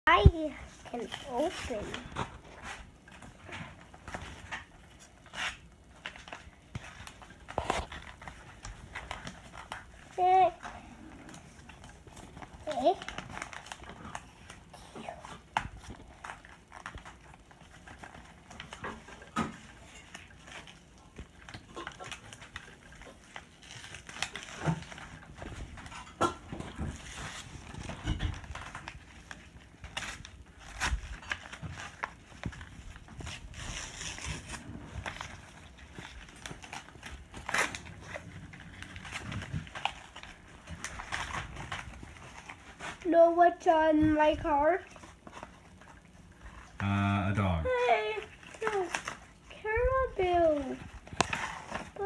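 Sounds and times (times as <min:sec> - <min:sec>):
paper envelopes being torn open: 0:00.1 - 0:43.1, 0:44.9 - 0:52.0.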